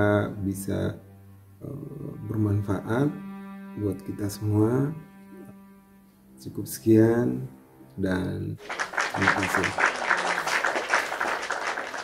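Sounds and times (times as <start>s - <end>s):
applause: 8.6s - 12.0s.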